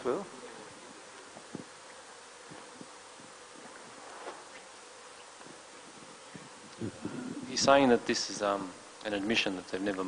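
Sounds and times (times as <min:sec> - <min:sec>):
faint hum: 0:00.0 - 0:10.0
rustles: 0:00.0 - 0:10.0
steady hiss: 0:00.0 - 0:10.0.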